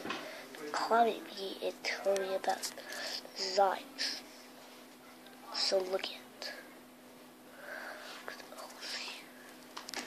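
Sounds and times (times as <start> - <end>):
person whispering: 8.2 - 9.4.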